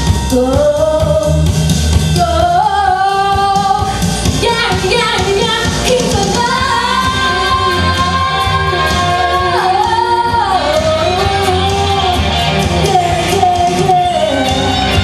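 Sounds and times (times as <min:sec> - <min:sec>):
country-pop band: 0:00.0 - 0:15.0
woman singing into microphone: 0:00.0 - 0:15.0.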